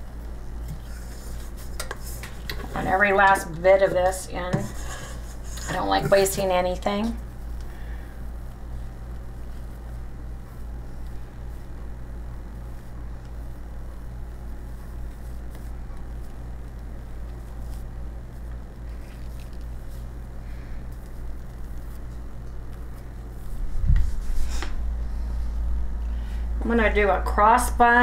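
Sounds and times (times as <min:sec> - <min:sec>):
steady low hum: 0:00.0 - 0:28.0
spatula scraping ceramic dish: 0:04.4 - 0:06.4.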